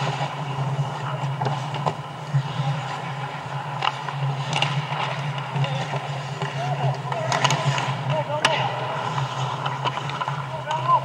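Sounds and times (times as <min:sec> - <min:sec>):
hockey sticks and puck clacking: 0:00.0 - 0:11.0
low arena hum: 0:00.0 - 0:11.0
skates on ice: 0:00.0 - 0:11.0.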